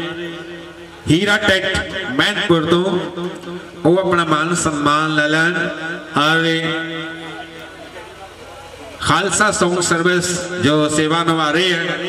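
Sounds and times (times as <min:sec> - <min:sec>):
man speaking over public address: 0:00.0 - 0:12.0
faint chatter of people: 0:06.7 - 0:09.6.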